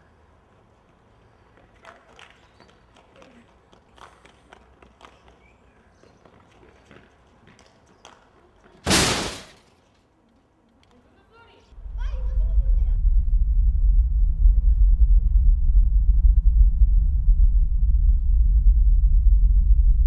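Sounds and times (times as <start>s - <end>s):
brief loud rush of noise: 8.9s - 9.6s.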